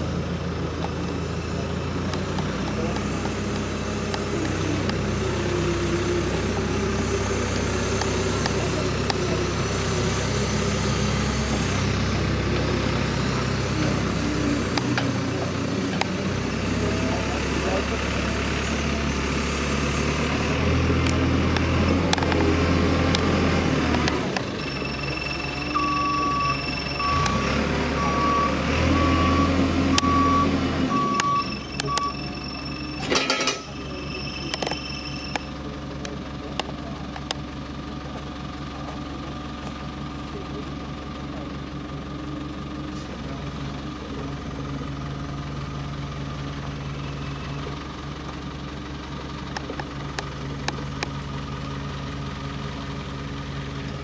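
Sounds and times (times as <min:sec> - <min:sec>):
diesel engine revving: 0:00.0 - 0:54.0
reversing alarm beeping: 0:24.5 - 0:35.6.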